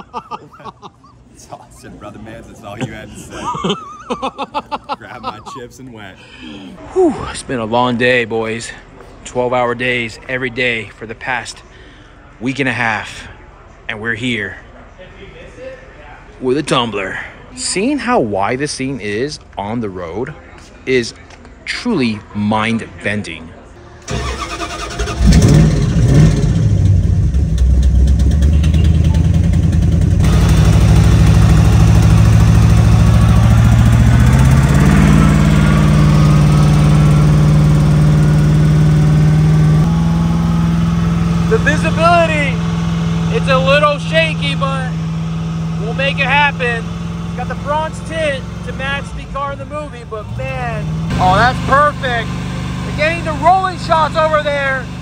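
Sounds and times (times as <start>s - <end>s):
car engine from inside cabin: 26.1s - 49.4s.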